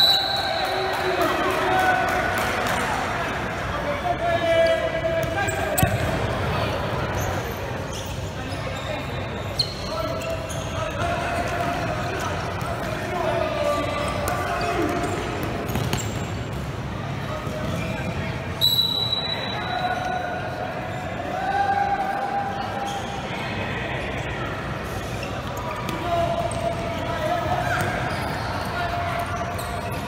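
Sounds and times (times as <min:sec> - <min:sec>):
whistle blast: 0:00.0 - 0:01.0, 0:18.6 - 0:19.8
ball kicked and bouncing: 0:15.4 - 0:16.3
people shouting in a gym: 0:16.3 - 0:30.0.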